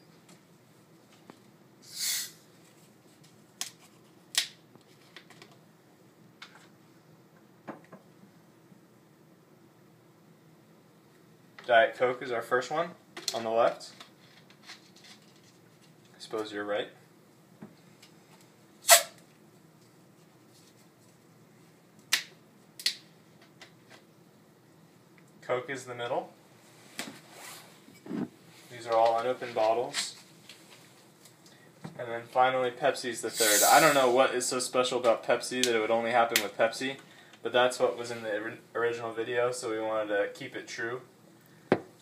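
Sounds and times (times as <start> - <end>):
short hiss: 1.8 - 2.4, 18.8 - 19.2, 33.3 - 34.2.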